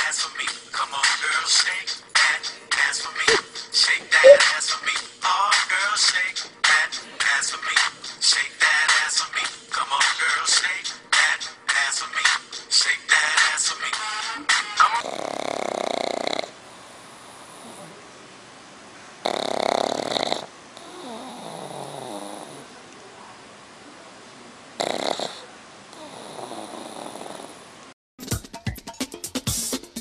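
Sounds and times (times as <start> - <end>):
dog snoring: 15.0 - 18.0, 19.2 - 22.7, 24.8 - 27.7.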